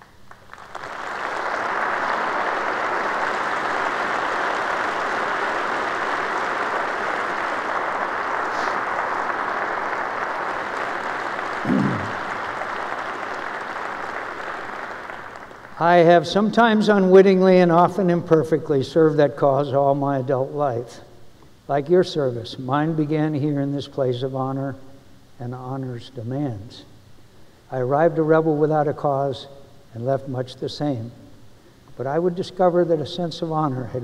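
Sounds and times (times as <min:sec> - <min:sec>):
audience applauding: 0:00.0 - 0:16.2
single voice calling out: 0:11.6 - 0:12.2.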